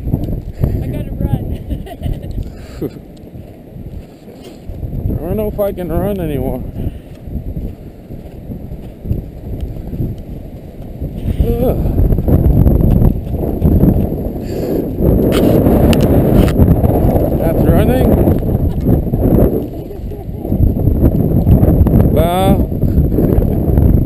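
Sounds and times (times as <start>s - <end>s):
wind rumbling on microphone: 0.0s - 24.0s
person laughing or speaking: 1.4s - 3.0s, 11.4s - 12.0s, 18.4s - 19.0s, 19.6s - 20.6s
footsteps in snow: 2.9s - 17.4s.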